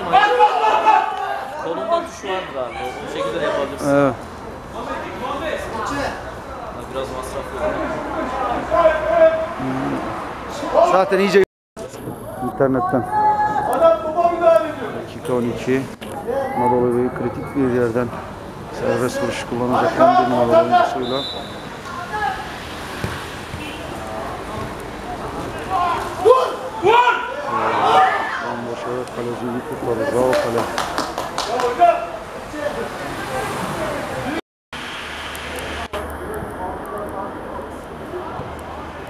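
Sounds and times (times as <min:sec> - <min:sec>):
long held shout: 0:00.0 - 0:01.6, 0:25.7 - 0:28.5
people calling out: 0:00.0 - 0:03.9, 0:25.2 - 0:28.7
voices on a football pitch: 0:00.0 - 0:34.4, 0:35.6 - 0:39.0
lower voice: 0:09.6 - 0:10.2.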